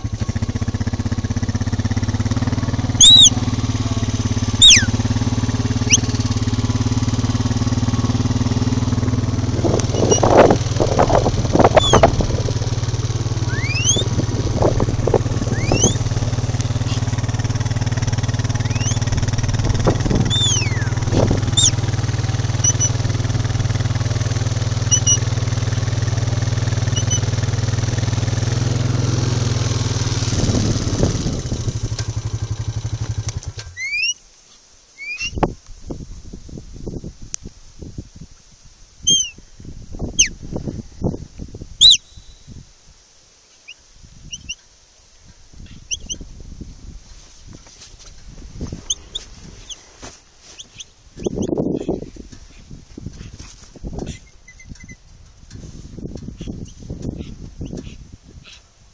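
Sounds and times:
quad bike engine running: 0.0 - 34.1, 39.0 - 42.5, 45.6 - 46.8, 47.5 - 58.6
high rising whistled notes: 2.9 - 3.4, 4.5 - 5.0, 13.4 - 14.2, 15.4 - 16.1, 18.6 - 19.1, 20.3 - 21.8, 41.8 - 42.5.

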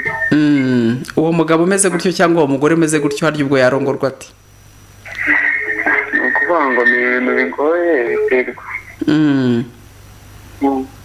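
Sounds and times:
person talking through phone speaker: 5.1 - 9.7.

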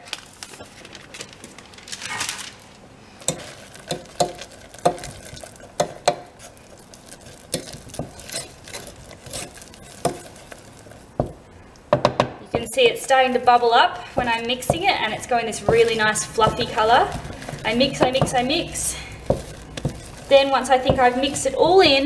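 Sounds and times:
wooden spoon scraping saucepan: 3.3 - 11.4, 12.6 - 22.0.

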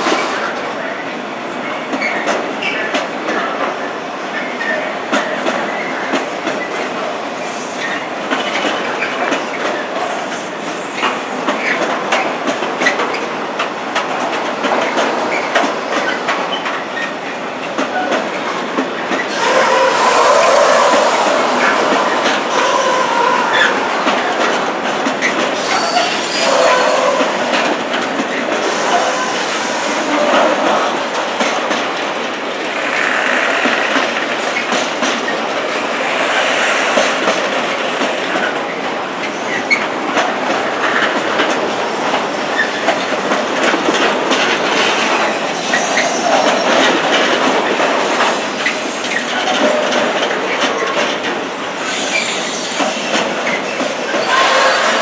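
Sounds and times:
freight train rumbling past: 0.0 - 55.0
wheel squeals: 25.6 - 27.4.

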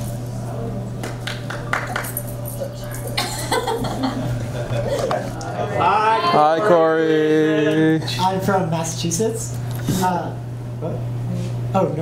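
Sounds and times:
low steady hum: 0.0 - 12.0
laughter: 3.2 - 5.2.

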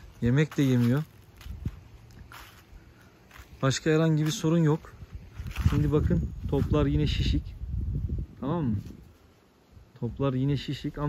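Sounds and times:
footsteps through fallen leaves: 0.0 - 7.2.

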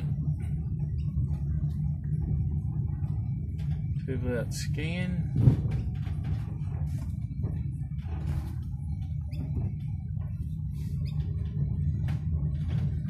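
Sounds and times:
engine and road rumble: 0.0 - 13.0.

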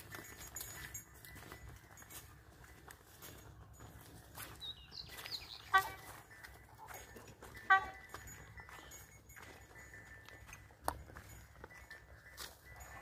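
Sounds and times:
hooves on dirt: 0.0 - 13.0
high chirping: 4.4 - 6.6.

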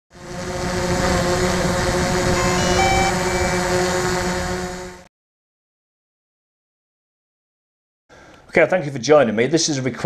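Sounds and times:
drone propellers buzzing: 0.1 - 5.1.

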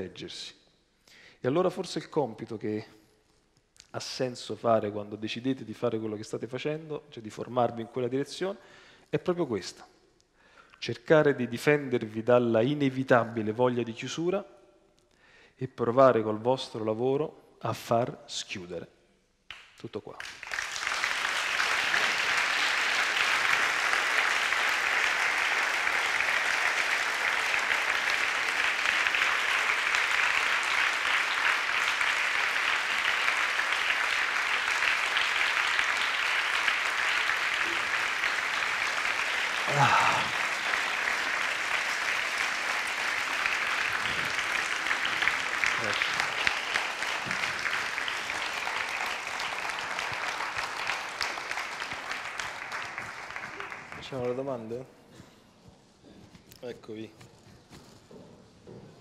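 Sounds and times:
audience applauding: 19.5 - 54.7.

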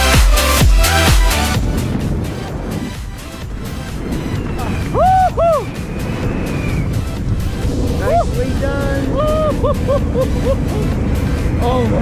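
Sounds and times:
background music: 0.0 - 12.0
wind rushing on microphone: 0.9 - 12.0
skydiver whooping: 3.7 - 11.6.

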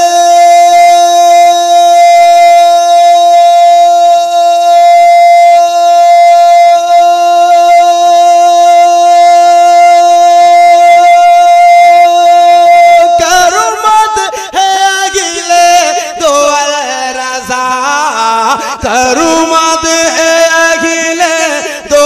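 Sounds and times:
long sustained drone note: 0.0 - 13.0.

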